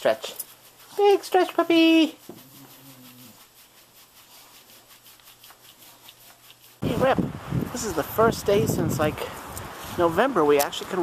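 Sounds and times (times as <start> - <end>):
faint rhythmic rubbing: 0.0 - 6.9.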